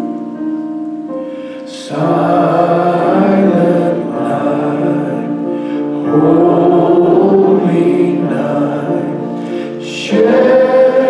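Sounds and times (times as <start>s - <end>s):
congregation singing a hymn: 1.6s - 11.0s.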